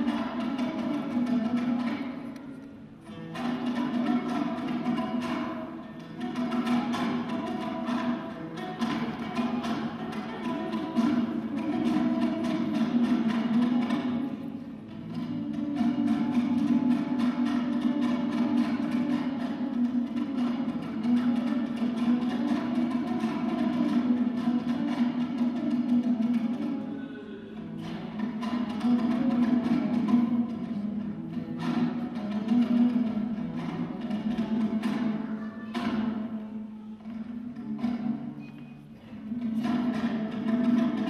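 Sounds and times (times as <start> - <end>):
strummed two-stringed lute: 0.0 - 41.0.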